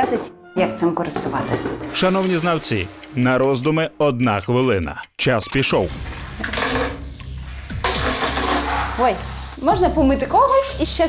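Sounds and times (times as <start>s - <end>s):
shower head spraying water: 7.7s - 11.0s.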